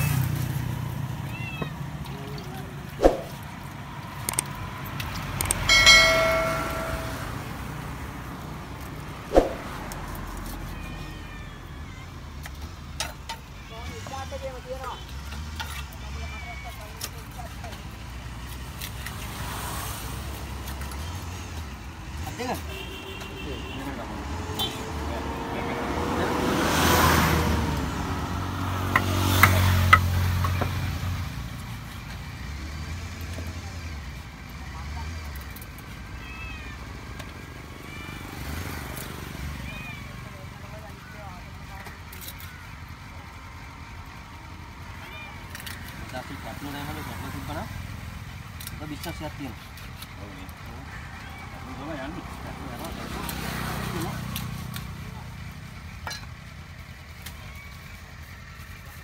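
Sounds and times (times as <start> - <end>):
engine: 0.0 - 59.0.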